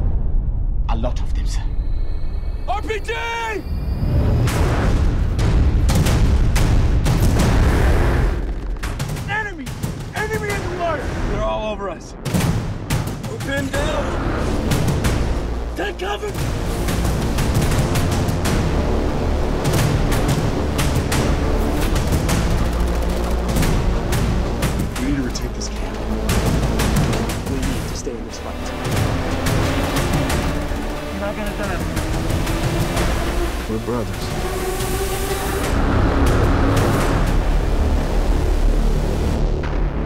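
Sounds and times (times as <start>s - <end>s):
dramatic music: 0.0s - 40.0s
explosions: 4.0s - 11.4s.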